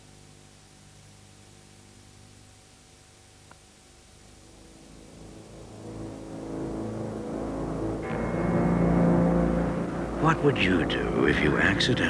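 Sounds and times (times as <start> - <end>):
tape hiss: 0.0 - 12.0
low sustained drone: 4.4 - 12.0.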